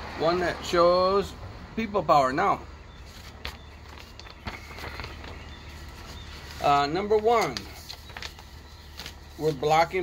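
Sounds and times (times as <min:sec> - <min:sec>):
paper magazine handled: 0:03.0 - 0:10.0.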